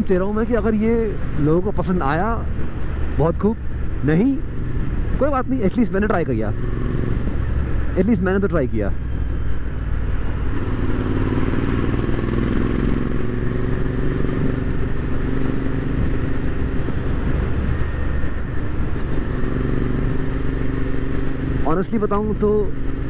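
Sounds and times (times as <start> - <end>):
wind rushing over microphone: 0.0 - 21.7
motorcycle engine cruising: 0.0 - 23.0.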